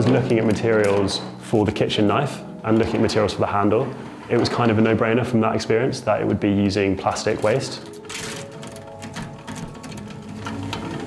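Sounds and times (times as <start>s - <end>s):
plastic crunching in shredder: 7.0s - 11.0s.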